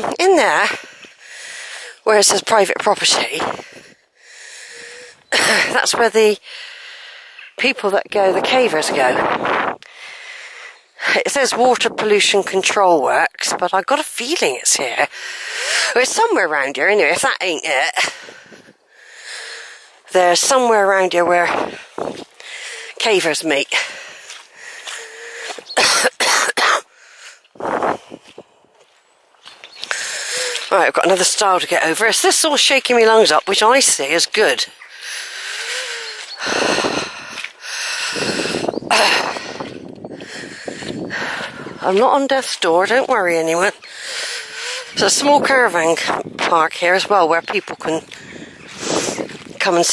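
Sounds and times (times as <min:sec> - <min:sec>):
woman breathing in laboured: 0:00.8 - 0:02.0, 0:03.5 - 0:05.3, 0:06.4 - 0:07.6, 0:09.8 - 0:10.9, 0:18.0 - 0:20.0, 0:21.7 - 0:23.0, 0:29.8 - 0:30.7, 0:34.8 - 0:41.8, 0:43.8 - 0:45.0.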